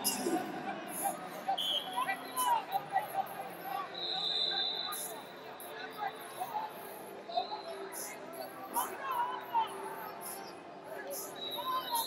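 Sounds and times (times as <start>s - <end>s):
hubbub of arena crowd: 0.0s - 12.0s
referee's whistle: 1.6s - 2.5s, 4.0s - 5.2s.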